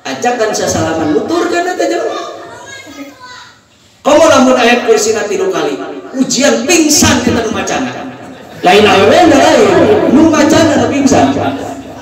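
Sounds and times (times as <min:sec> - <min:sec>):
faint children's voices: 0:01.0 - 0:04.0.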